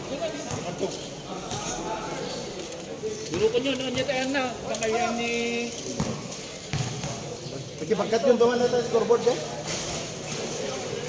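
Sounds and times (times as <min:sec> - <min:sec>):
basketball bouncing on concrete: 0:00.3 - 0:00.9, 0:03.3 - 0:04.4, 0:05.9 - 0:07.4.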